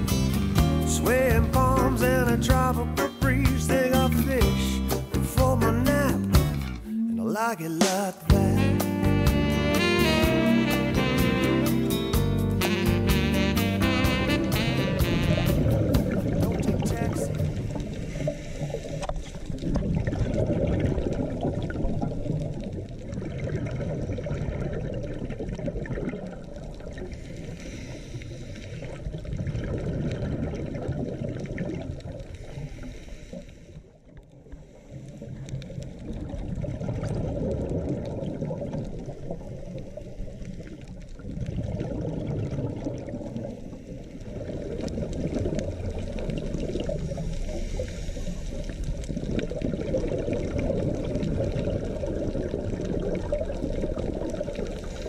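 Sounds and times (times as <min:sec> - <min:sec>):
muffled underwater water movement: 0:14.4 - 0:55.0.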